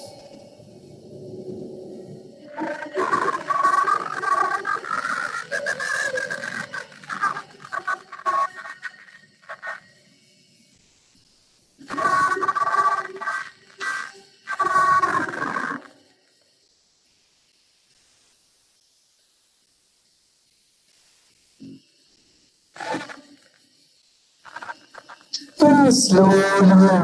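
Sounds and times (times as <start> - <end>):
guided relaxation recording: 0.0 - 27.0.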